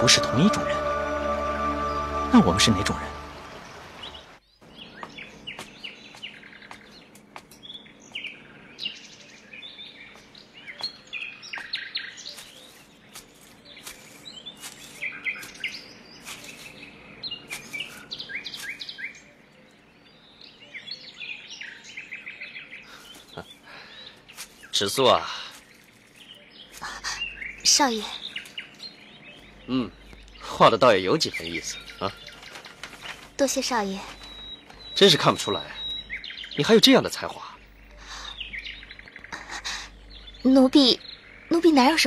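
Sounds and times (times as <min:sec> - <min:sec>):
songbirds chirping: 0:00.0 - 0:42.0.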